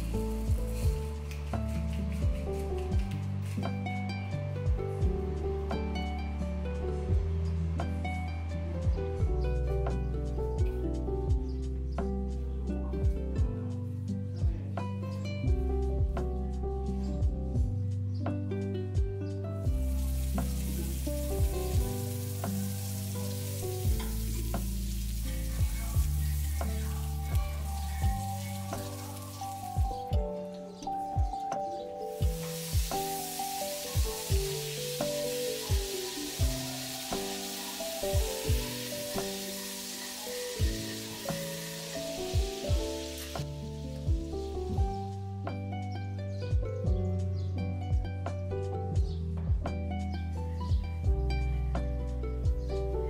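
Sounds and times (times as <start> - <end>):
meat sizzling in a frying pan: 0.0 - 2.2, 19.8 - 30.0, 32.1 - 43.5
background music with soft beat: 0.0 - 53.0.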